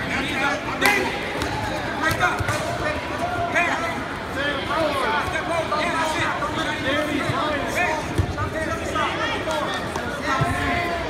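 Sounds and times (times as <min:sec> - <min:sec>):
voices in a gym hall: 0:00.0 - 0:11.0.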